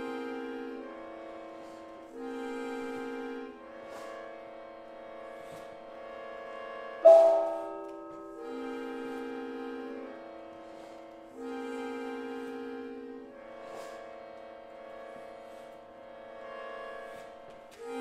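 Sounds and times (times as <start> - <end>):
gong struck with mallet: 7.0 - 8.4
sustained chords: 7.0 - 10.5.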